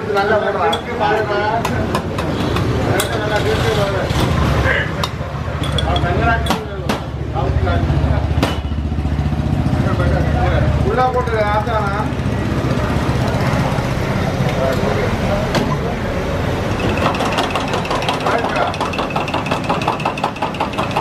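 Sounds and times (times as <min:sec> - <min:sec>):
background chatter: 0:00.0 - 0:19.0
glass and steel mugs clinking: 0:05.0 - 0:06.6, 0:16.8 - 0:21.0.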